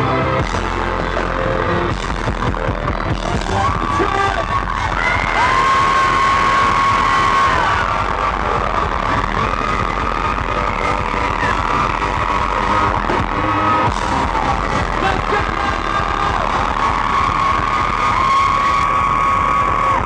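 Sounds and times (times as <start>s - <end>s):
dance-pop band playing: 0.0s - 20.0s
electric guitar: 0.0s - 20.0s.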